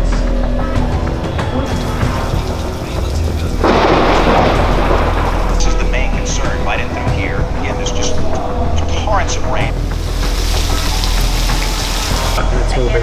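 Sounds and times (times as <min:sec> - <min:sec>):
background music with low drone: 0:00.0 - 0:13.0.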